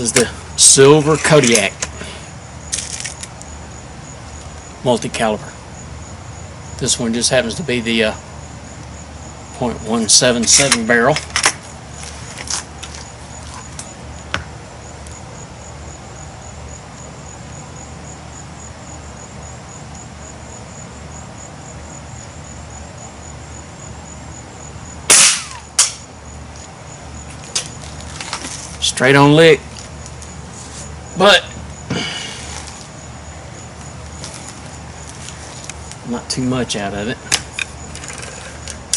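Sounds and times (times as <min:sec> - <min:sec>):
air rifle shot crack: 0:25.1 - 0:26.0.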